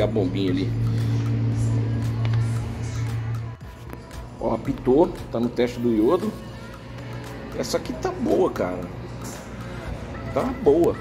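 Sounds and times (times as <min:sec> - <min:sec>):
background music: 0:00.0 - 0:11.0
electric pump humming: 0:00.0 - 0:11.0.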